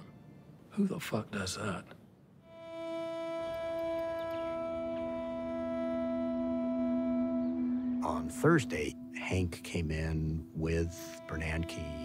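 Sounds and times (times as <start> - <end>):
sustained drone chord music: 2.4 - 12.0.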